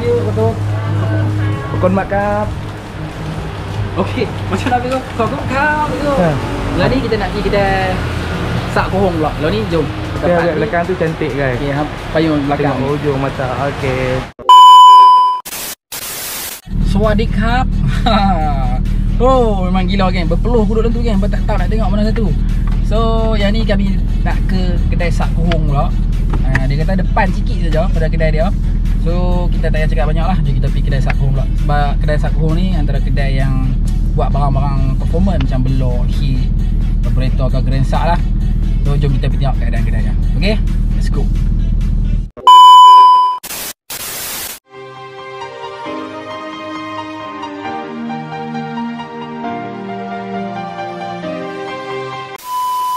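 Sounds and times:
background music: 0.0s - 13.7s, 44.7s - 52.4s
loud steady beep tone: 14.4s - 15.5s, 42.4s - 43.4s, 52.4s - 52.9s
static hiss bursts: 15.5s - 16.6s, 43.4s - 44.6s.

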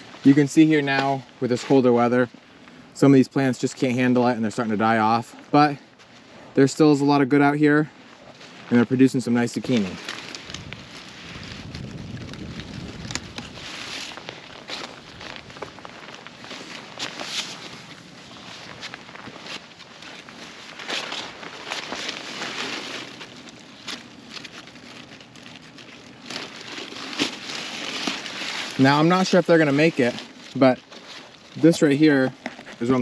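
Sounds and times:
plant leaves rustling and crackling: 0.0s - 33.0s.

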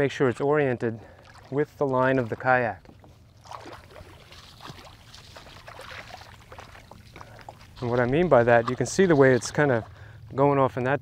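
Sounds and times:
feet wading through shallow water: 0.0s - 10.4s.

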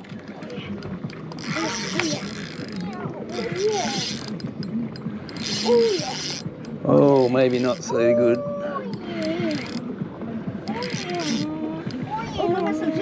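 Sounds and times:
fishing reel whirring and clicking: 0.0s - 9.9s, 10.6s - 12.8s.

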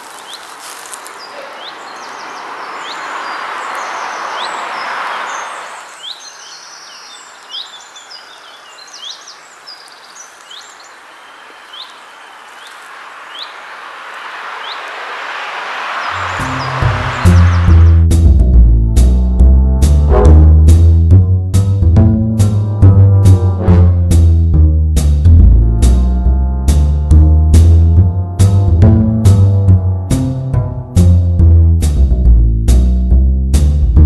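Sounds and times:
small birds chirping: 0.0s - 18.0s
stream rushing: 0.0s - 18.0s
loud music with deep drums: 16.5s - 34.0s.

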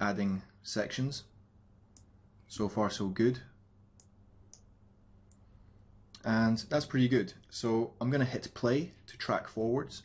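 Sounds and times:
faint computer mouse clicks: 1.9s - 2.1s, 4.0s - 4.7s.

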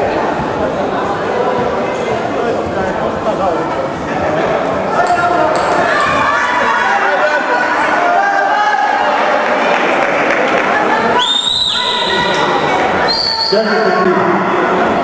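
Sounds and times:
voices calling out in a hall: 0.0s - 15.0s.

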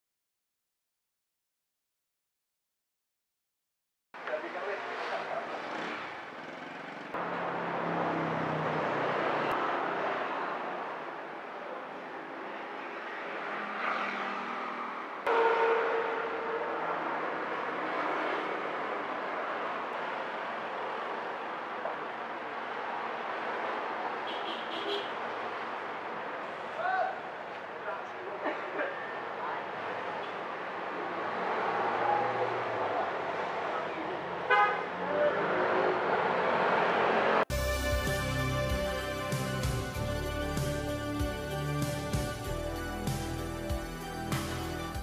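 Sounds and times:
cars passing: 4.2s - 45.0s
motorcycles passing: 4.4s - 44.9s
vehicle horn toot: 15.3s - 16.8s, 24.3s - 25.2s, 34.5s - 34.9s.

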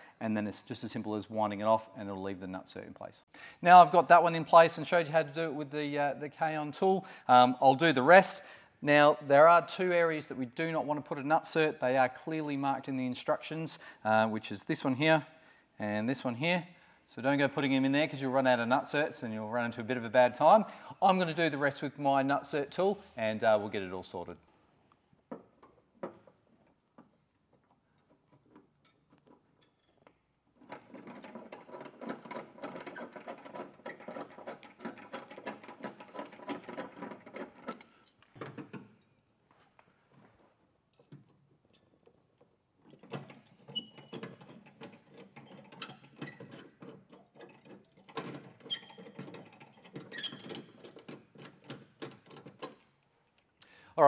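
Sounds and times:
rivet nut tool clicking and rattling: 28.0s - 38.8s, 40.9s - 52.8s.

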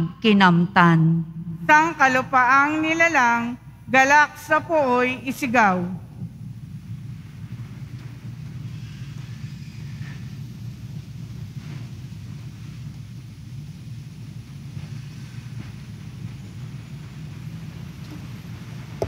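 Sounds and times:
low steady rumble: 0.0s - 19.0s
faint hiss: 1.7s - 19.0s.

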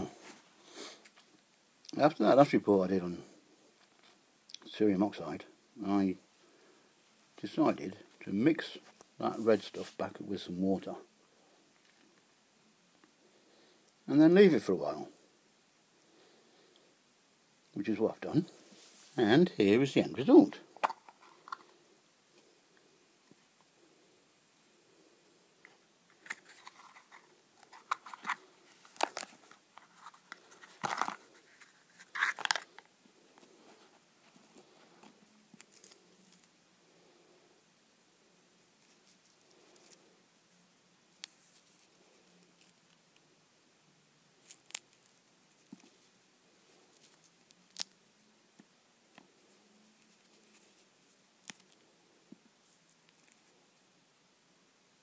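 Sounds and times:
small crackles: 25.6s - 36.6s, 38.8s - 40.2s, 41.1s - 43.3s, 44.4s - 53.6s.

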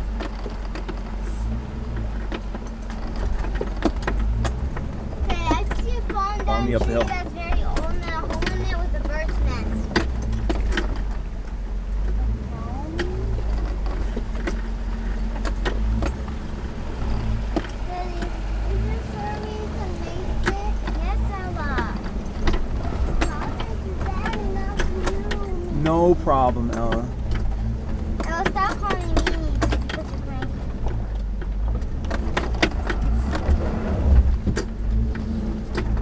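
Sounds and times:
cab rattling over ruts: 0.0s - 36.0s
car engine running low: 0.0s - 36.0s.

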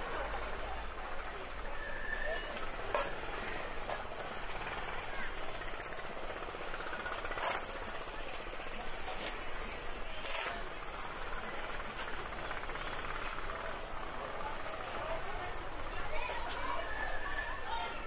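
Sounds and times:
faint voices: 0.0s - 18.0s
street background wash: 0.0s - 18.0s.

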